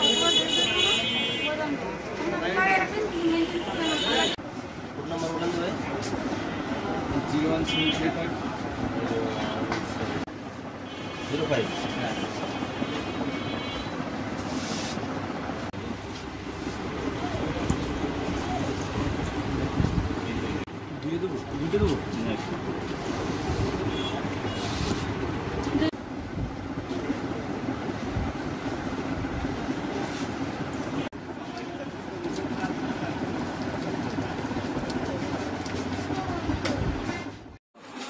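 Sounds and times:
steady background noise: 0.0 - 38.0.

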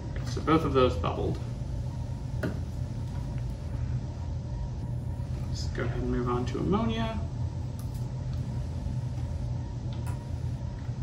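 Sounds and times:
low room rumble: 0.0 - 11.0.

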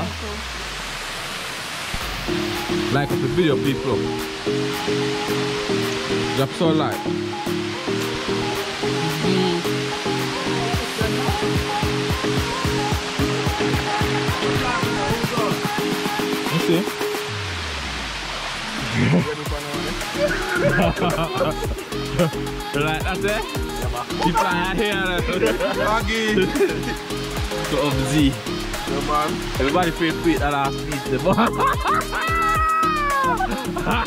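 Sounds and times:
background music sustained notes: 0.0 - 34.0
waterfall rushing into pool: 0.0 - 34.0.

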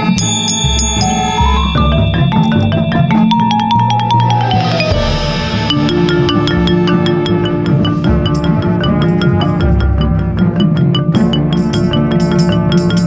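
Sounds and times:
sustained instrument chords: 0.0 - 12.9
marimba played with yarn mallets: 0.0 - 13.0.

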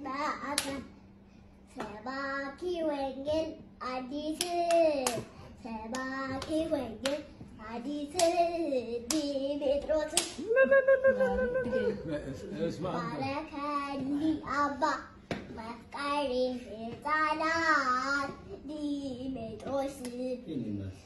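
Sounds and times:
young child singing: 0.0 - 0.9, 1.7 - 10.4, 12.8 - 20.5
hands clapping: 5.9 - 7.2, 9.1 - 9.3, 10.1 - 10.4.

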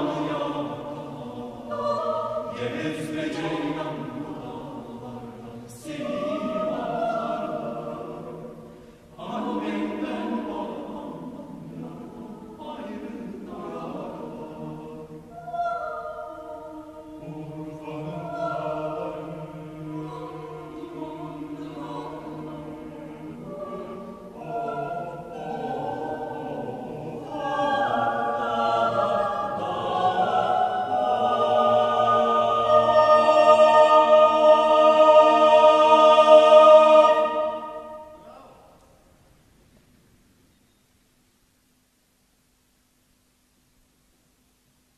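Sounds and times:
mixed choir singing a cappella: 0.0 - 38.6.

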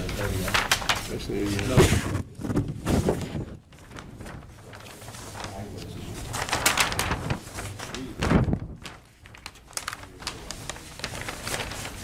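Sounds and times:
paper sheets rustling: 0.0 - 12.0.

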